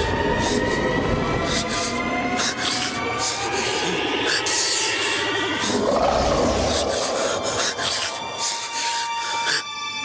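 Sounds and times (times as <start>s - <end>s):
man's rasping breaths: 0.0s - 10.0s.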